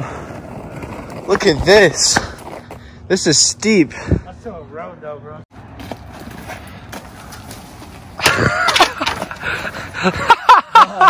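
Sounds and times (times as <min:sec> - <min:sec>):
young men laughing: 0:08.2 - 0:11.0.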